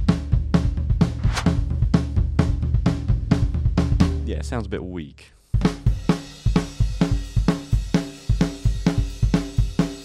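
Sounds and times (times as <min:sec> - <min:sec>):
drum kit playing steady beat: 0:05.6 - 0:10.0.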